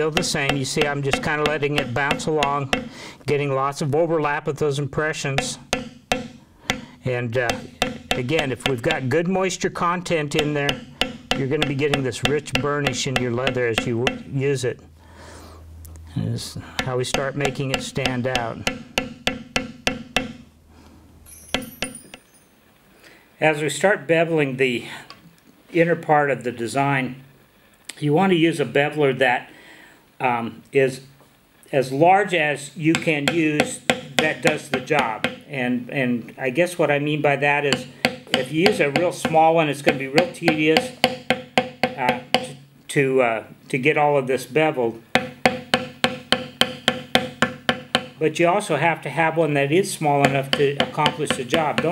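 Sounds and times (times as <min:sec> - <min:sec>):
mallet striking metal stamp: 0:00.0 - 0:03.0, 0:05.1 - 0:14.4, 0:16.8 - 0:20.5, 0:21.3 - 0:22.3, 0:32.9 - 0:35.5, 0:37.7 - 0:42.6, 0:45.1 - 0:48.2, 0:50.2 - 0:51.9.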